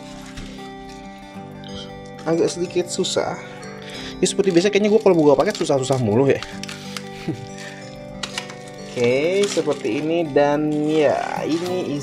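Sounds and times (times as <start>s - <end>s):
packing tape pulled open crackles: 0.0s - 12.0s
soft background music: 0.0s - 12.0s.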